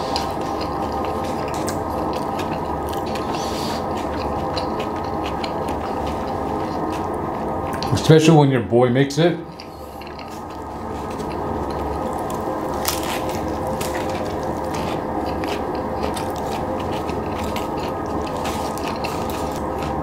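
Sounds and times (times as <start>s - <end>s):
wet chewing crackle: 0.0s - 7.9s, 9.5s - 20.0s.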